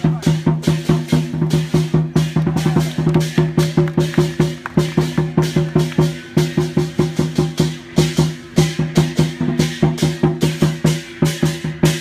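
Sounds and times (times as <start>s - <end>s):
cymbals clashing: 0.0s - 12.0s
fast drum beat: 0.0s - 12.0s.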